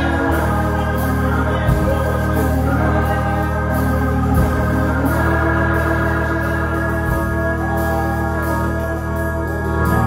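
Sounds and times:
organ holding sustained chords: 0:00.0 - 0:10.0.

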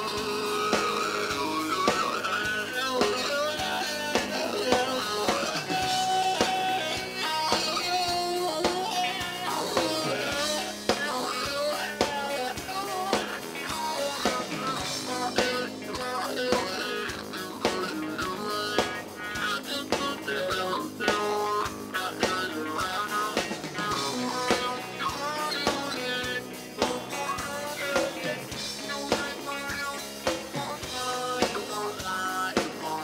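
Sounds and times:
drum kit: 0:00.0 - 0:33.0
talk box electric guitar: 0:00.0 - 0:33.0.

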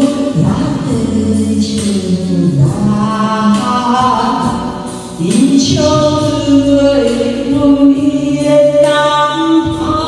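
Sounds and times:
musical accompaniment: 0:00.0 - 0:10.0
woman singing into a microphone: 0:00.0 - 0:10.0.

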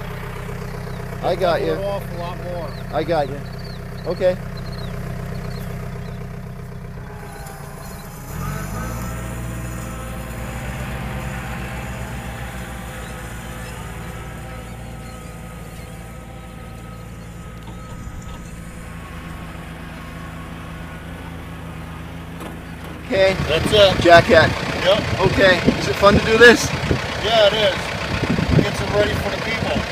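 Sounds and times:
tractor diesel engine running: 0:00.0 - 0:29.9.

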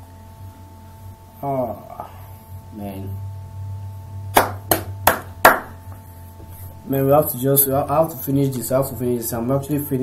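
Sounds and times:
sharp hand claps: 0:04.3 - 0:05.8.

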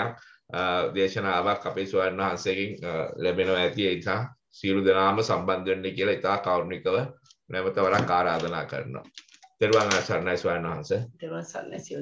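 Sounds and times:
person speaking: 0:00.0 - 0:12.0.

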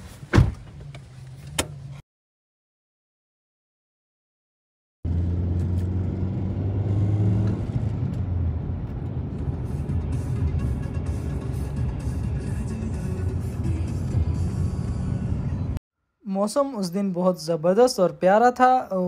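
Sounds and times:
car driving rumble: 0:00.0 - 0:02.0, 0:05.1 - 0:15.8
background music: 0:09.6 - 0:15.8.

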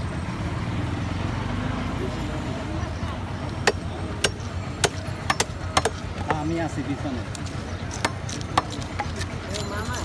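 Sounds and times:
blade chopping fish: 0:03.6 - 0:06.5.

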